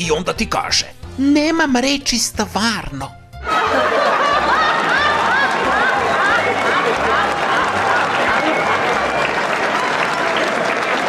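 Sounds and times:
audience laughing: 0:03.4 - 0:11.0
audience clapping: 0:03.6 - 0:11.0.

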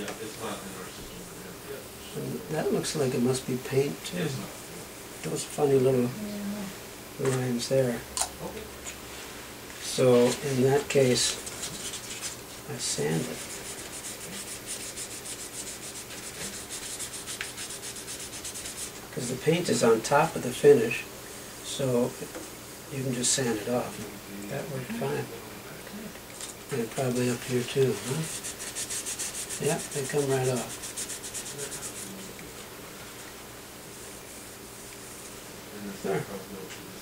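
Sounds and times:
faint handling sounds: 0:08.9 - 0:13.5
hand sanding wood: 0:10.2 - 0:19.1, 0:27.0 - 0:32.2.

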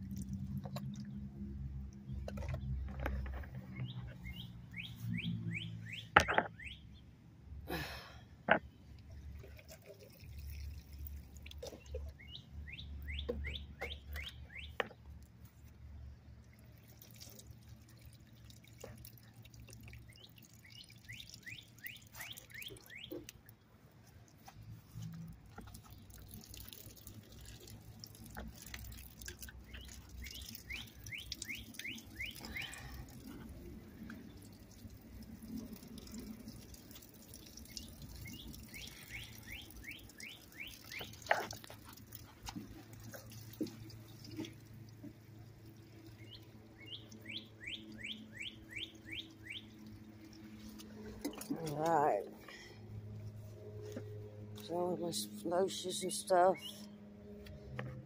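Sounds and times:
small bird chirping: 0:20.1 - 0:23.4, 0:29.6 - 0:33.0, 0:37.6 - 0:41.3, 0:46.1 - 0:50.5.

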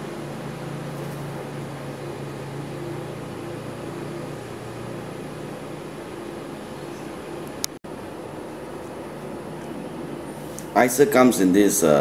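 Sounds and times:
machine hum and hiss: 0:00.0 - 0:12.0.

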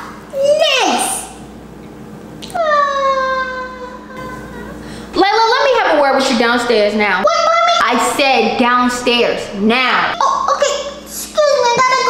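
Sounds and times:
girl whining: 0:02.5 - 0:04.8.

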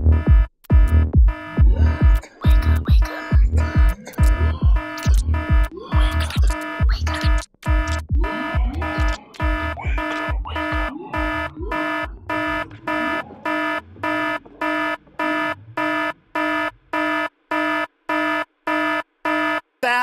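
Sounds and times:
kick drum thumping: 0:00.0 - 0:12.2
pulsing chopped synth chord: 0:00.0 - 0:18.4.

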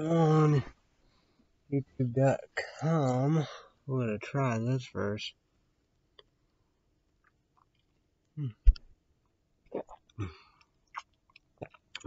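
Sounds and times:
man humming mm: 0:08.4 - 0:08.7, 0:10.2 - 0:10.4
swallowing: 0:09.7 - 0:12.0.

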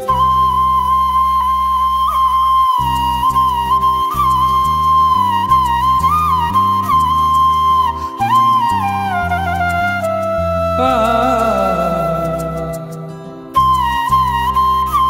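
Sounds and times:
bamboo flute melody: 0:00.0 - 0:15.0.

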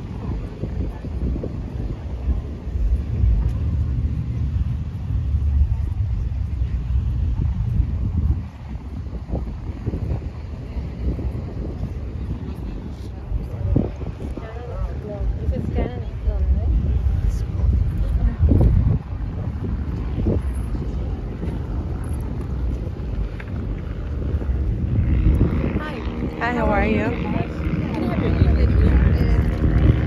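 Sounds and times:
people talking in background: 0:00.0 - 0:30.0
wind rumbling on microphone: 0:00.0 - 0:30.0.

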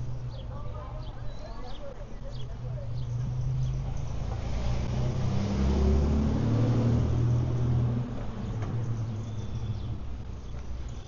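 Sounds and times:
vehicle driving past: 0:03.0 - 0:10.3.

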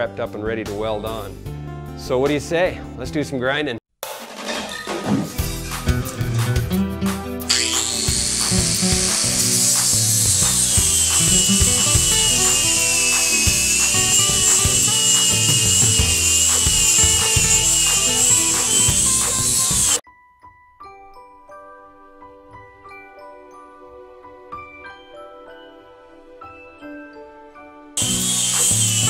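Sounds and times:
music with drum beat: 0:05.2 - 0:20.0
angle grinder grinding metal: 0:07.5 - 0:20.0, 0:28.0 - 0:29.0.

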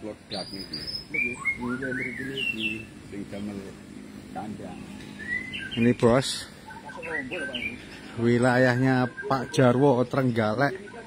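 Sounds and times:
low voices talking: 0:00.0 - 0:11.0
small birds chirping: 0:00.0 - 0:11.0.

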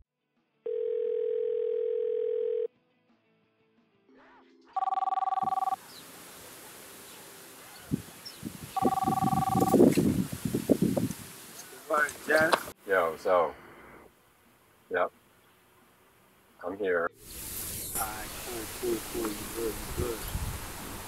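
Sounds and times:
mobile phone two-tone ring: 0:00.7 - 0:02.7, 0:04.8 - 0:05.8, 0:08.8 - 0:09.8
phone ringback tone: 0:00.7 - 0:02.7, 0:04.8 - 0:05.8, 0:08.8 - 0:09.8
phone rustling: 0:08.8 - 0:09.8.

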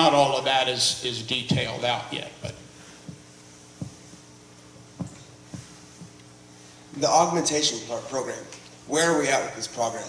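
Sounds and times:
steady hum: 0:00.0 - 0:10.0
microphone handling thumps: 0:01.5 - 0:06.2.

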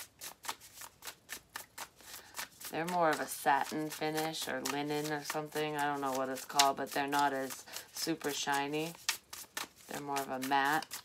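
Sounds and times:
cards being shuffled by hand: 0:00.0 - 0:11.0.

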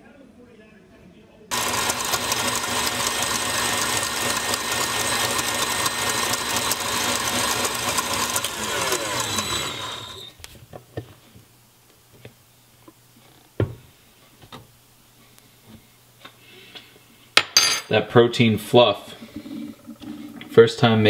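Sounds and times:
stand mixer whisking at high speed: 0:01.5 - 0:10.3.

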